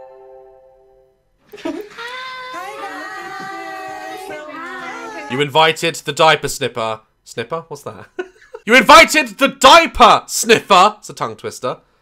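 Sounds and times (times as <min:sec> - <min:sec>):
women's voices singing held notes: 0:01.9 - 0:05.4.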